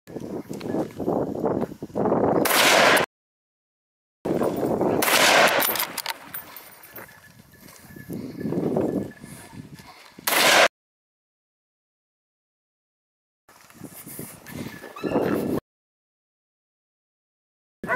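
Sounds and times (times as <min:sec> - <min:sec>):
shotgun shots: 0:02.4 - 0:03.1, 0:04.9 - 0:06.3, 0:10.2 - 0:10.7.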